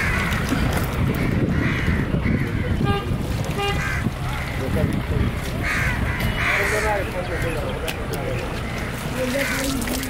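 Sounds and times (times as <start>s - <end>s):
crow cawing: 0.0s - 0.5s, 1.2s - 2.8s, 3.7s - 4.6s, 5.6s - 7.6s, 9.3s - 10.0s.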